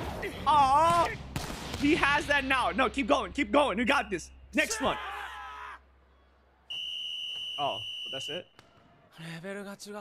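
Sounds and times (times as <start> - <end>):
referee's whistle blast: 6.7 - 8.6.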